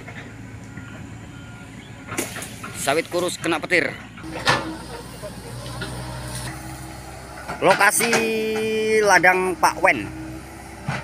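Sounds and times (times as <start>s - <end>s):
excavator diesel engine running: 0.0s - 11.0s.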